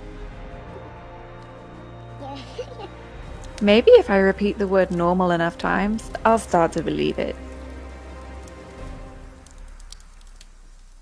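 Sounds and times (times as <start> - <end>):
quiet background music: 0.0 - 11.0
fire crackling and popping: 3.1 - 11.0.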